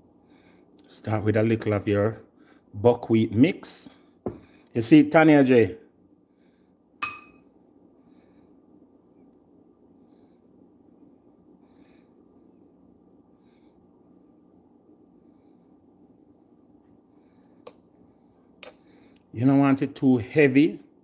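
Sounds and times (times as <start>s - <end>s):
faint low hum: 0.0s - 21.0s
metal spoon clinking glass bowl: 7.0s - 7.5s.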